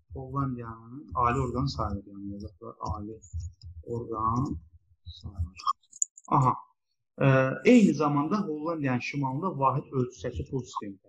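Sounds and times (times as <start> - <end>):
person speaking: 0.1 - 6.6, 7.2 - 11.0.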